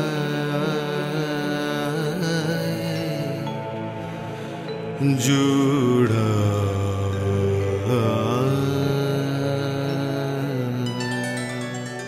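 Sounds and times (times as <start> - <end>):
low drone: 0.0 - 12.0
person singing a long note: 4.9 - 12.0.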